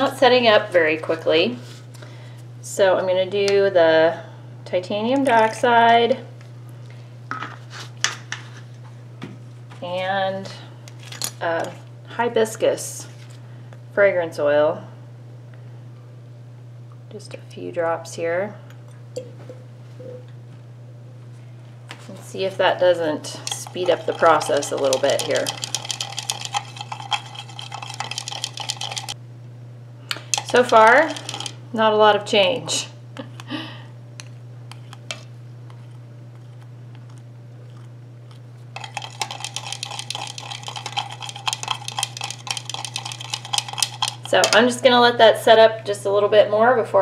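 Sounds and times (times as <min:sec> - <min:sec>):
low electrical hum: 0:00.0 - 0:47.0
utensil clicking against cup: 0:23.4 - 0:29.2, 0:38.8 - 0:44.3.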